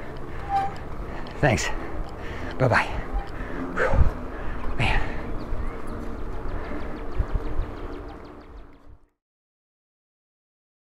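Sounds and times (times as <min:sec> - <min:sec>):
bicycle tyre noise on pavement: 0:00.0 - 0:08.8
wind buffeting microphone: 0:00.0 - 0:09.0.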